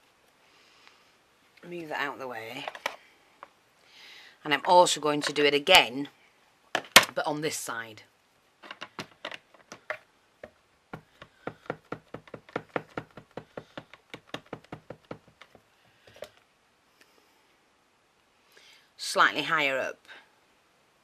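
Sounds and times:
rubber stamp tapping ink pad: 0:09.8 - 0:15.6.

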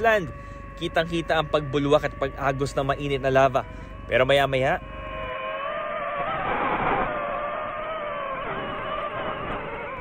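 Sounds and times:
drone propellers whining: 0:00.0 - 0:10.0
rush of noise: 0:04.8 - 0:10.0.

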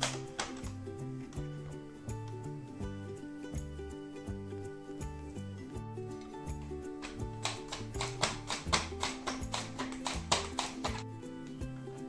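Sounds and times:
background music: 0:00.0 - 0:12.0
potato slicing on mandoline: 0:06.2 - 0:11.1.

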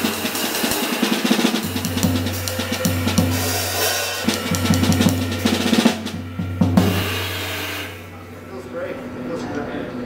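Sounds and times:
jazz drum kit and cymbals: 0:00.0 - 0:08.5
low held note: 0:01.6 - 0:08.6.

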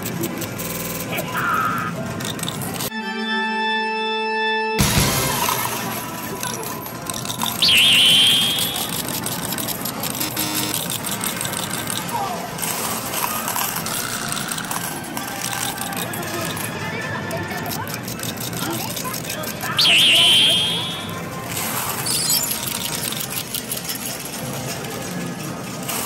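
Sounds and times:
arcade machines electronic music: 0:06.4 - 0:12.1, 0:13.6 - 0:21.4
short high-pitched sound: 0:07.6 - 0:09.1, 0:19.8 - 0:21.2.

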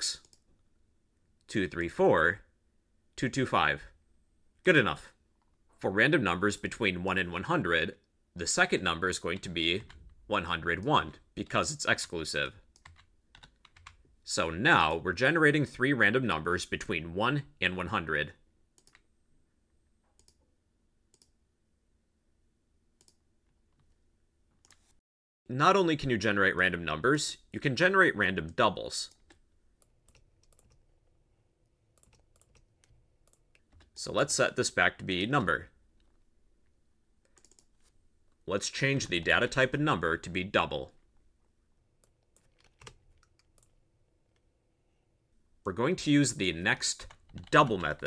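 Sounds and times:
computer keyboard clicking: 0:12.8 - 0:14.0, 0:30.0 - 0:30.8, 0:32.0 - 0:34.0, 0:37.3 - 0:37.7, 0:42.0 - 0:43.8, 0:47.0 - 0:48.0
faint computer mouse clicks: 0:18.8 - 0:19.0, 0:21.1 - 0:21.3, 0:37.2 - 0:37.7.

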